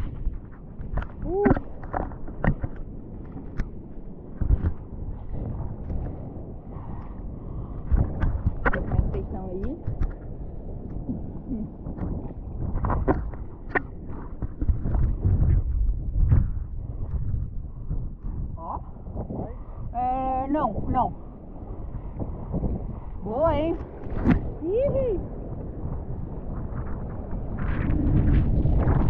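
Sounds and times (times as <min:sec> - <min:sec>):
low rumbling buffets: 0:00.0 - 0:29.0.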